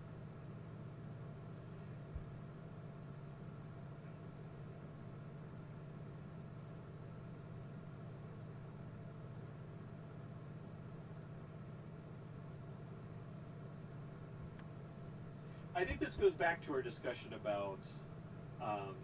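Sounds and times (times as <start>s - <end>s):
low hum with faint hiss: 0.0s - 19.0s.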